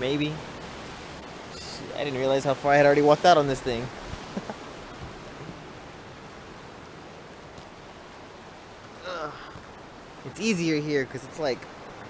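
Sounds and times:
ocean surf washing: 0.0s - 12.0s.

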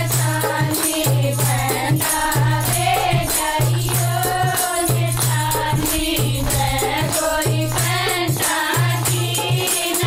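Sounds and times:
hand claps: 0.0s - 10.0s
rattling percussion beat: 0.0s - 10.0s
women singing in unison: 0.0s - 10.0s.

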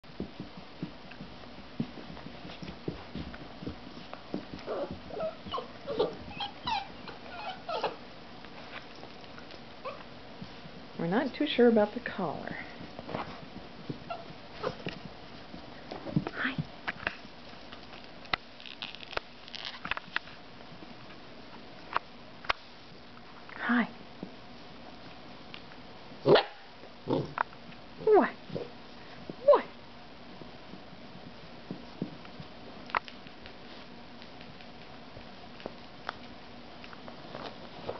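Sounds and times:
puppies scuffling: 0.0s - 22.9s, 30.2s - 37.9s
puppies whimpering and yipping: 4.7s - 8.0s
puppy barking: 26.2s - 26.6s.

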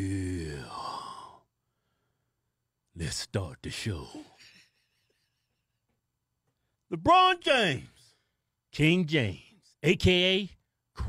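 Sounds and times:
man's deep drawn-out vocal tone: 0.0s - 1.4s.

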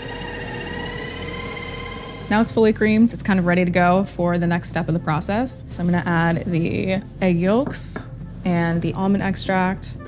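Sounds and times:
stand mixer motor whine: 0.0s - 2.4s.

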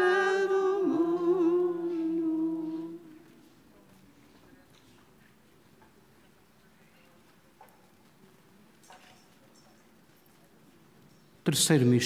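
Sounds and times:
voices singing unaccompanied: 0.0s - 3.4s.

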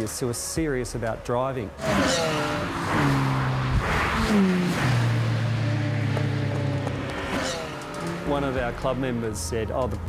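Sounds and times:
sports car engine at high revs: 1.8s - 8.6s.

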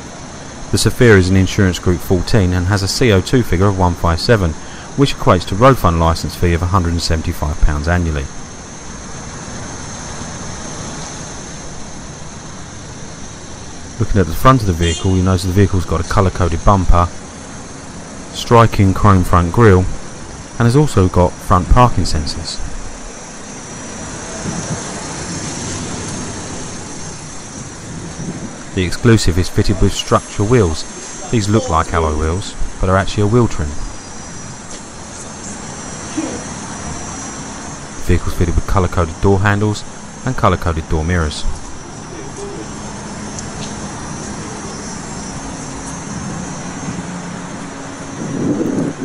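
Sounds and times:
faint hum: 0.0s - 49.0s
low mechanical drone: 0.0s - 49.0s
outdoor hiss: 0.0s - 49.0s.

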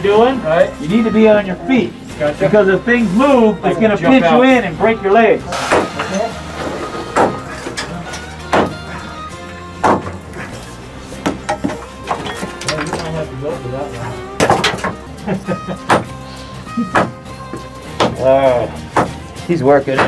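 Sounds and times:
background music: 0.0s - 20.0s
sledgehammer striking rock: 8.5s - 8.8s, 9.8s - 10.2s.

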